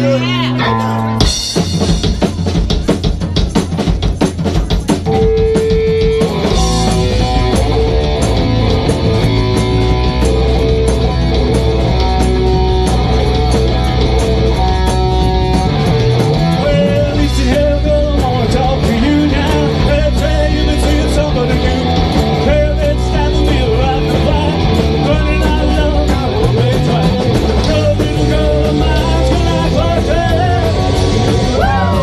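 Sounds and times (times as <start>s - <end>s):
live rock band playing: 0.0s - 32.0s
rapid drum hits: 1.2s - 32.0s.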